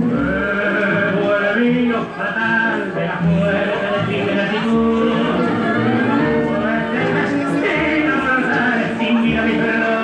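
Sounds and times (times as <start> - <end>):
tango orchestra music: 0.0 - 10.0.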